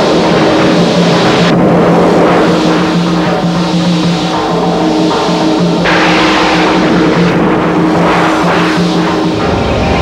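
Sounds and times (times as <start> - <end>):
loud dense rushing: 0.0 - 10.0
low droning tone: 1.4 - 10.0.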